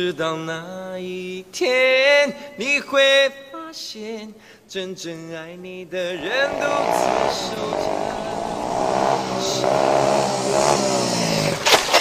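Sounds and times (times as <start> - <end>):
person singing a pop ballad: 0.0 - 11.5.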